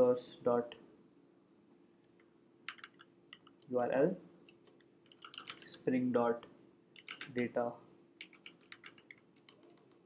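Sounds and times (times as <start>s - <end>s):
computer keystrokes: 2.7s - 3.6s, 8.2s - 9.6s.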